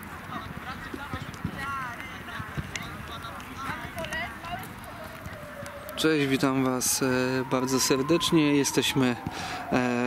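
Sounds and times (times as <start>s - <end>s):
footballs kicked on grass: 0.0s - 6.8s.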